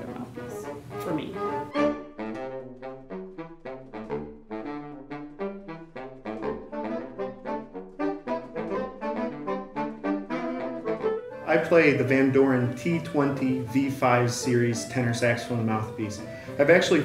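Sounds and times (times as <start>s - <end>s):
saxophone quartet playing: 0.0s - 17.0s.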